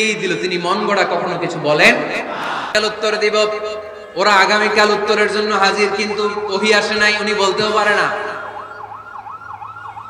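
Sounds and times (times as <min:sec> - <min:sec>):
man's voice reverberating: 0:00.0 - 0:08.6
siren yelping: 0:03.5 - 0:10.0.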